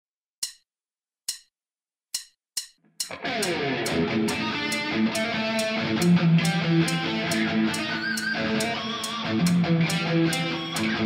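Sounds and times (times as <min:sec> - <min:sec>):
count-in clicks: 0:00.4 - 0:01.5, 0:02.1 - 0:11.0.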